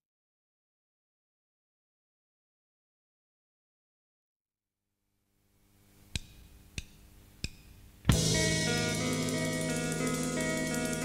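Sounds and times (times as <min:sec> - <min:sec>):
faint steady hum: 0:05.0 - 0:11.0
drumsticks clicking together: 0:06.1 - 0:07.8.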